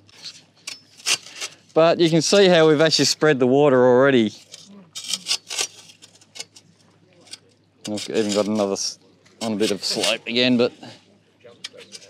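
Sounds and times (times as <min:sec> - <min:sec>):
shovel scraping in dry dirt: 0:00.0 - 0:02.4, 0:04.3 - 0:06.6, 0:07.9 - 0:10.2.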